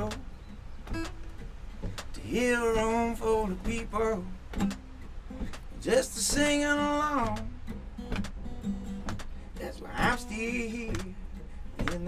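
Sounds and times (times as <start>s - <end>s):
acoustic guitar strummed chords: 0.0s - 12.0s.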